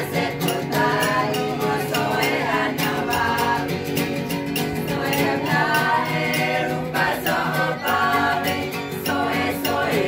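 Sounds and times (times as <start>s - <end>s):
group of voices singing: 0.0s - 10.0s.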